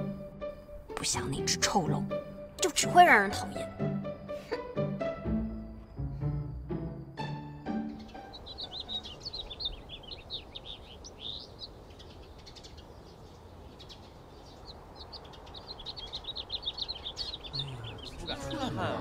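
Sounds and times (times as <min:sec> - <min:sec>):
music notes: 0:00.0 - 0:09.2
small songbirds chirping: 0:00.0 - 0:19.0.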